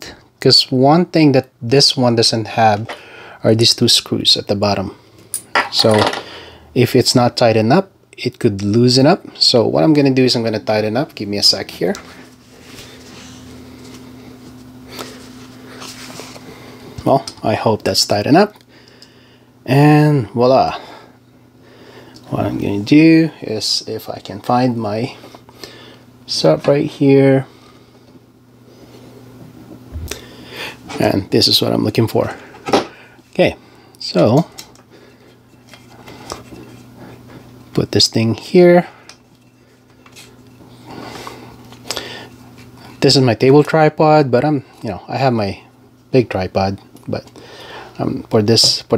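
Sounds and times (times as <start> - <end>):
steady low hum: 0.0 - 48.9
soft rubbing scrape: 12.1 - 16.5.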